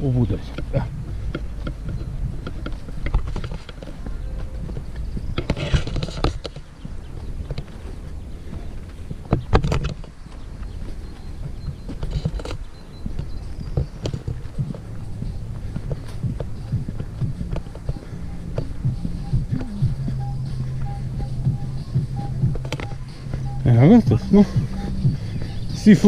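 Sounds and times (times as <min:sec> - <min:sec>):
footsteps on dirt path: 0:00.0 - 0:26.0
grass rustling: 0:00.0 - 0:26.0
low rumble: 0:12.8 - 0:26.0.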